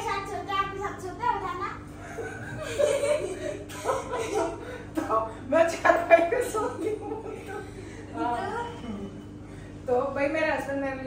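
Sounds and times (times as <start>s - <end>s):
girl laughing: 2.0s - 5.2s
woman laughing: 2.0s - 5.3s, 6.0s - 9.1s.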